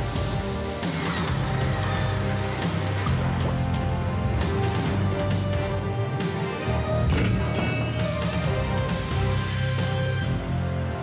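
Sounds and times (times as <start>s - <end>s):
theme music with sustained tones: 0.0s - 11.0s.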